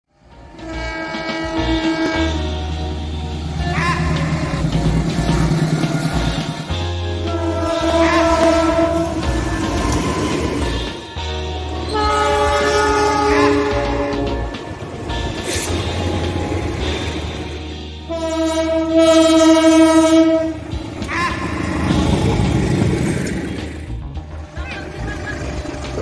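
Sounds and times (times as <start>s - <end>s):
train horn blast: 0.2s - 22.8s.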